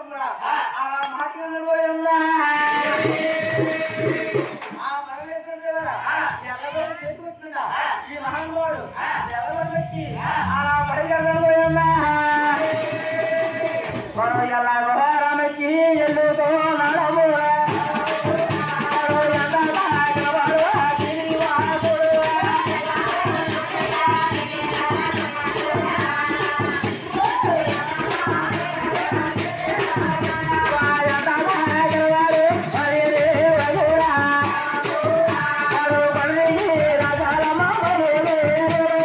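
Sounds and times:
jingling percussion: 2.4s - 6.4s, 12.1s - 14.6s, 17.6s - 39.0s
drums: 2.5s - 4.9s, 8.2s - 14.9s, 16.0s - 39.0s.

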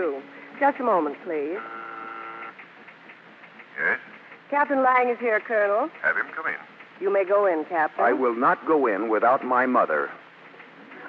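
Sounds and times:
intercom buzzer tone: 1.5s - 2.5s
man speaking over intercom: 6.0s - 6.7s, 8.0s - 10.2s.

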